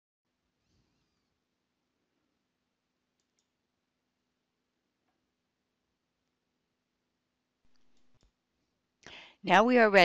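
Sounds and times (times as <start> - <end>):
computer mouse clicks: 3.2 - 3.6, 7.7 - 8.4.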